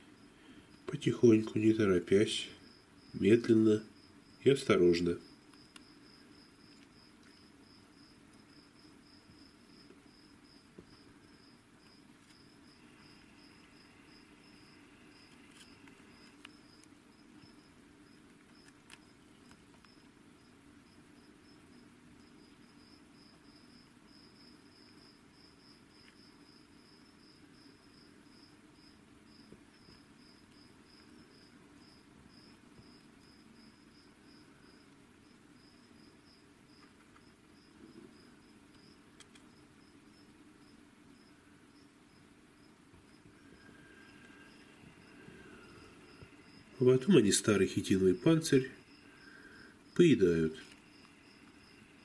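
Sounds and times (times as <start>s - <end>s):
insect chirping: 0.0s - 52.0s.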